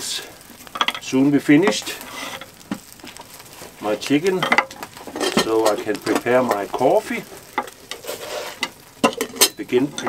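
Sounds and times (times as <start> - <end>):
chicken sizzling on a grate: 0.0 - 10.0
wood fire crackling: 0.0 - 10.0.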